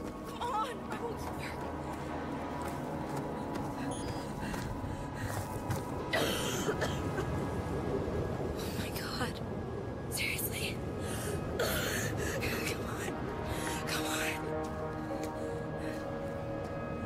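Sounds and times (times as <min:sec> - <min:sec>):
film soundtrack music: 0:00.0 - 0:17.0.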